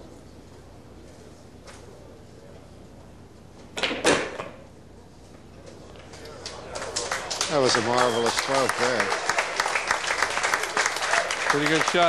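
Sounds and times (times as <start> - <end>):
faint clapping: 5.9 - 12.0.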